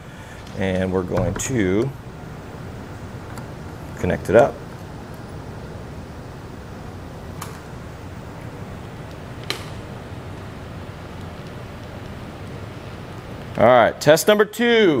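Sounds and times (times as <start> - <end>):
steady room noise: 0.0 - 15.0.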